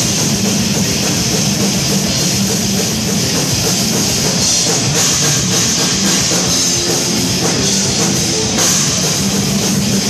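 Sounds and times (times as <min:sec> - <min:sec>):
distorted electric guitars: 0:00.0 - 0:10.0
pounding drum kit: 0:00.0 - 0:10.0.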